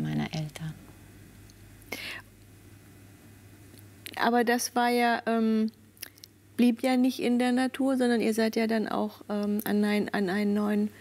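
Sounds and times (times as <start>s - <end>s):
low room hum: 0.0s - 11.0s
short breath: 1.9s - 2.2s.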